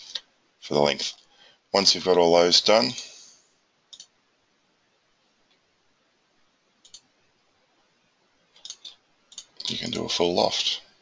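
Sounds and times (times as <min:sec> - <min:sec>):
low hiss: 0:00.0 - 0:11.0.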